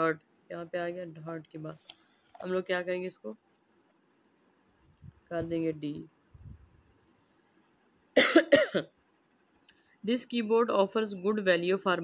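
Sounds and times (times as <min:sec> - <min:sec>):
man coughing: 0:08.2 - 0:08.9.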